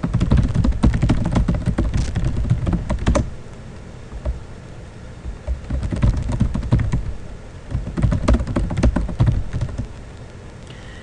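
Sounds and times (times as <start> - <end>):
fast typing on keyboard: 0.0 - 3.3, 5.4 - 9.9.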